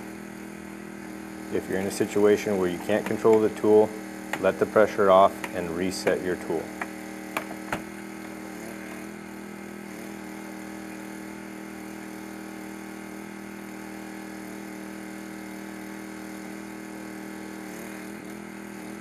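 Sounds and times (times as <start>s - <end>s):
engine humming steadily: 0.0s - 19.0s.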